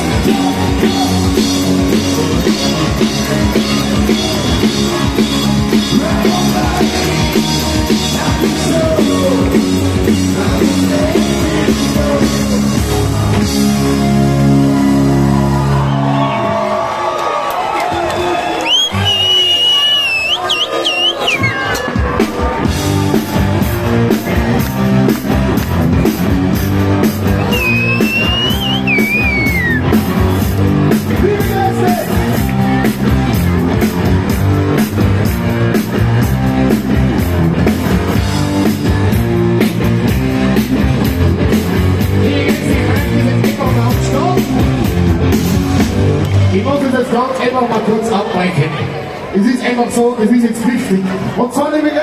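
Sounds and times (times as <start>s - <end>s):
live rock band playing: 0.0s - 16.7s, 20.2s - 47.2s
audience cheering: 14.8s - 33.4s
shrill piercing whistle: 18.6s - 21.7s, 27.5s - 29.8s.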